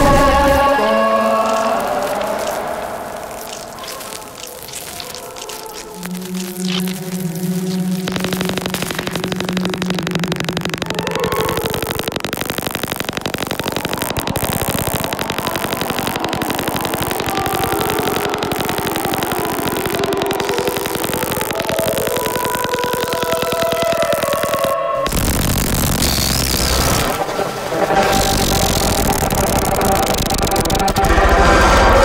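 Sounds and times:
glitchy buzzing pulse: 0.0s - 32.0s.

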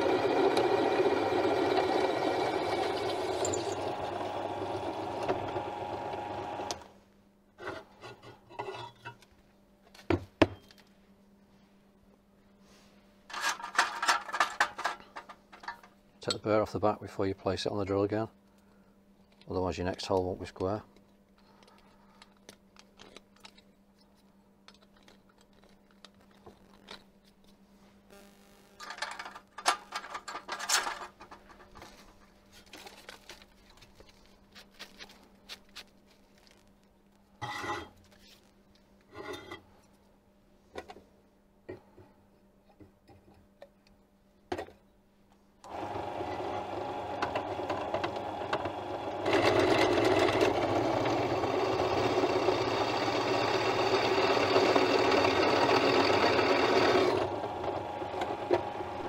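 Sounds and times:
pillar drill motor running: 0.0s - 6.8s, 45.7s - 59.0s
drill bit boring into steel: 48.5s - 59.0s.

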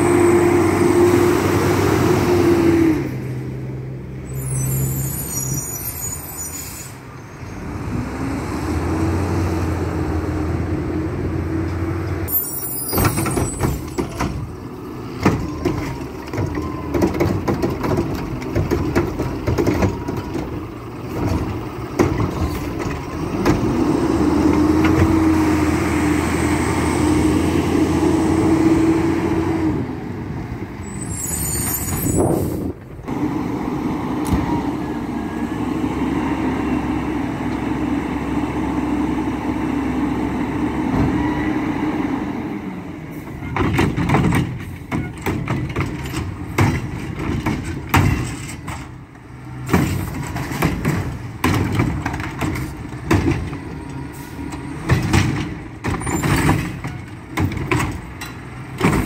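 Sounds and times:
diesel truck engine droning: 0.0s - 59.0s
air brake hiss: 4.4s - 7.1s.

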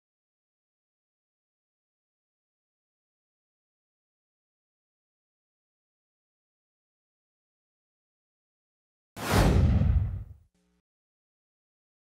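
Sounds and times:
whoosh with deep rumble: 9.2s - 10.4s.

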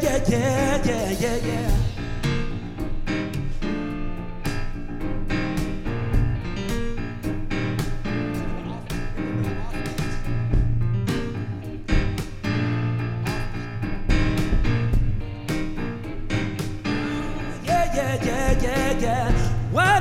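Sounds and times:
steady drum beat: 0.0s - 17.1s, 17.7s - 20.0s
electric guitar: 0.0s - 20.0s
piano: 0.0s - 20.0s.

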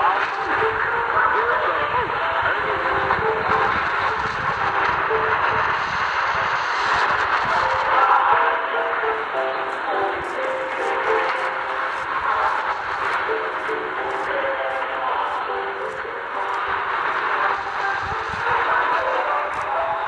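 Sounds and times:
radio music through small speaker: 0.0s - 20.0s
shortwave radio hiss: 0.0s - 20.0s.

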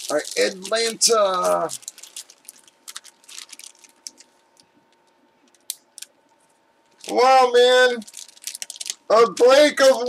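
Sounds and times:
plastic bag crinkling: 0.0s - 6.1s, 6.9s - 10.0s.

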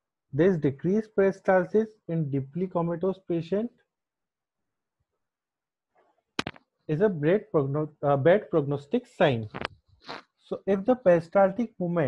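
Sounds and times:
man speaking: 0.4s - 3.7s, 6.9s - 9.6s, 10.5s - 12.0s
sharp click: 6.4s - 6.6s.

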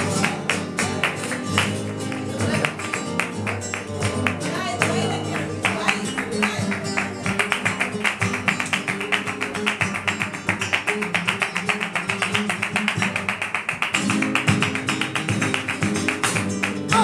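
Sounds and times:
flamenco guitars strumming: 0.0s - 17.0s
flamenco hand clapping: 0.0s - 17.0s.

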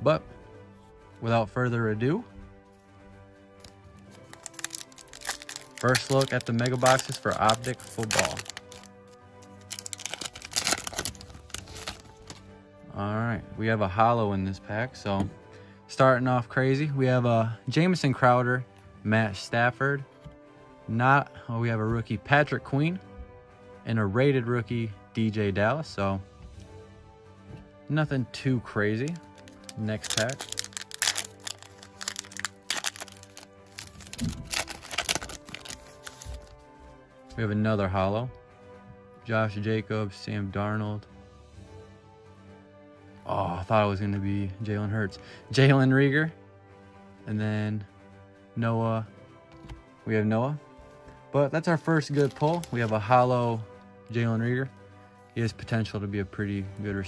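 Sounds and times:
background music: 0.0s - 57.0s
foil wrapper crinkling: 3.6s - 12.4s, 29.1s - 36.5s, 52.1s - 53.0s.

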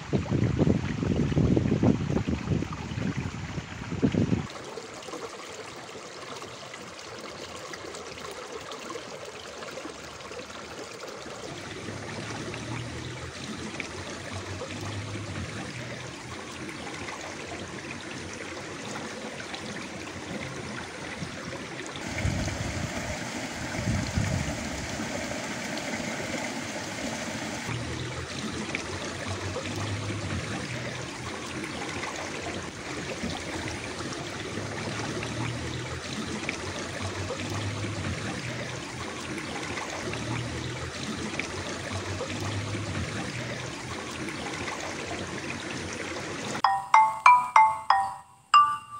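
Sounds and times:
water trickling in a stream: 0.0s - 48.9s.

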